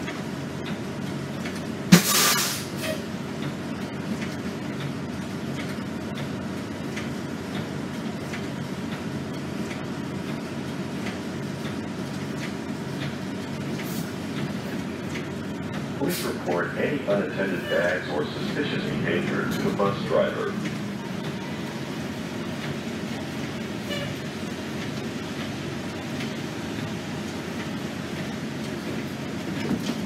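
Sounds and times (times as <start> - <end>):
bus engine drone: 0.0 - 30.0
compressed air hiss: 1.9 - 2.7.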